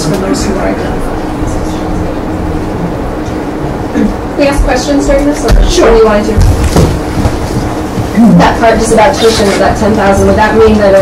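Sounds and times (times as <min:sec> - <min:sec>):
low room rumble and hum: 0:00.0 - 0:11.0.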